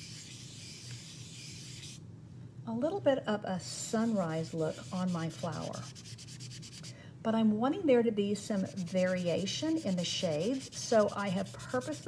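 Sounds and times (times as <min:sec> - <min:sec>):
sponge rubbing chalk on paper: 0:00.0 - 0:02.0, 0:04.0 - 0:06.9, 0:08.6 - 0:12.0.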